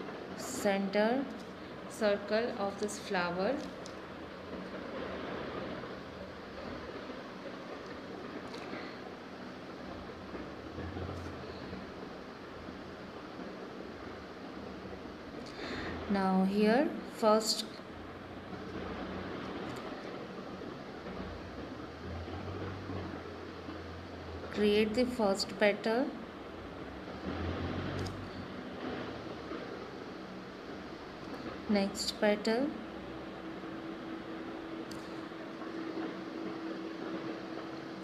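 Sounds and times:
low hum: 0.0s - 38.0s
steady hiss: 0.0s - 38.0s.

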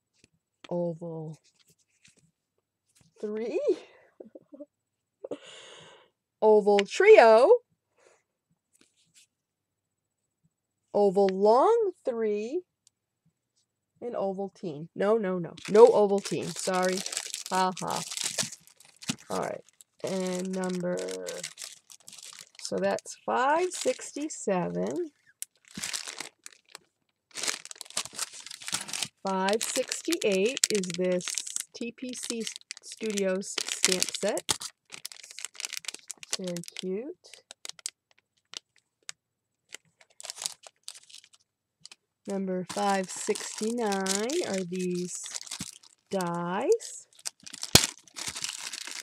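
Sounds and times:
plastic bag snapping: 15.6s - 22.7s, 25.4s - 31.6s, 33.6s - 36.8s, 37.5s - 38.8s, 39.7s - 42.0s, 42.7s - 46.0s, 47.1s - 49.0s
plastic packaging crinkling: 15.6s - 42.0s, 42.7s - 49.0s.

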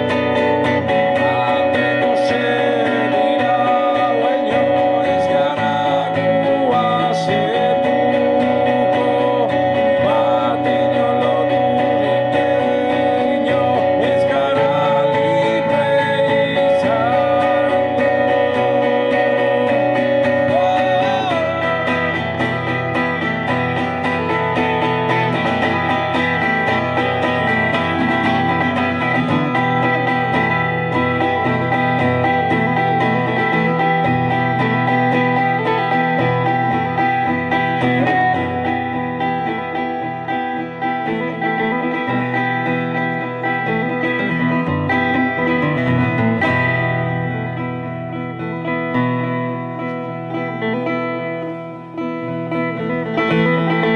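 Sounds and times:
acoustic guitar: 0.0s - 53.9s.

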